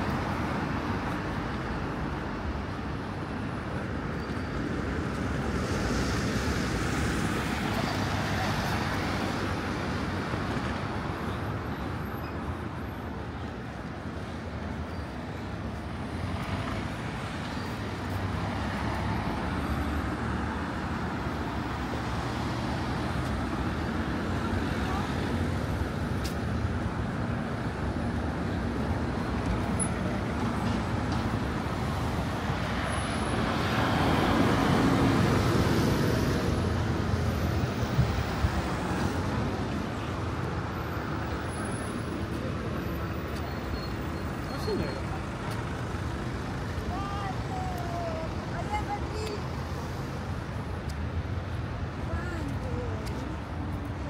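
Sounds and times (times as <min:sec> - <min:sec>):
city road traffic: 0:00.0 - 0:54.0.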